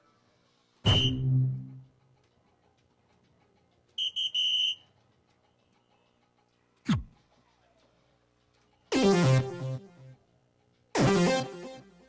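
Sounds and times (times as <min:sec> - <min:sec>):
quick high beeps: 0:00.9 - 0:01.8.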